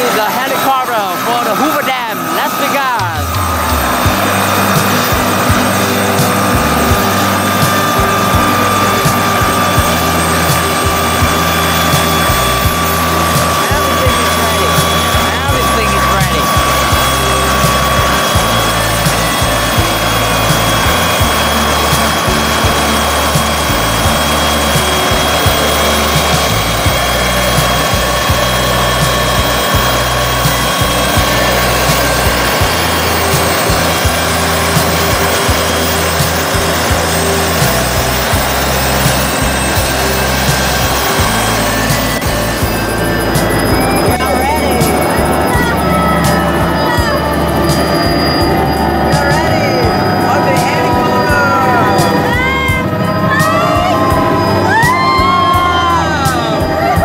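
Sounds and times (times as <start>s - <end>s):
helicopter rotor turning: 0.0s - 57.0s
helicopter turbine whine: 0.0s - 57.0s.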